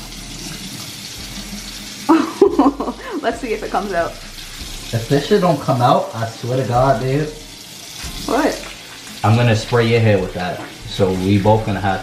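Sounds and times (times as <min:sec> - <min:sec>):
faucet water splashing into basin: 0:00.0 - 0:12.0.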